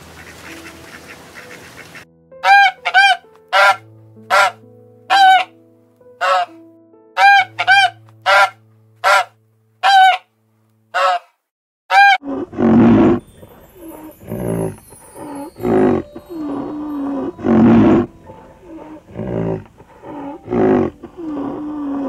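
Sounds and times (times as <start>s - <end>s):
swan honking: 0.0s - 5.6s, 6.2s - 6.6s, 7.2s - 10.3s, 10.9s - 22.0s
soft piano music: 0.0s - 10.9s, 12.8s - 22.0s.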